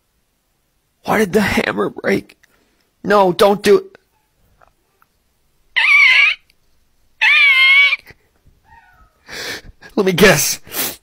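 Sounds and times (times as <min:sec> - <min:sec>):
high-pitched wavering cries: 0:05.7 - 0:06.5, 0:07.2 - 0:09.2.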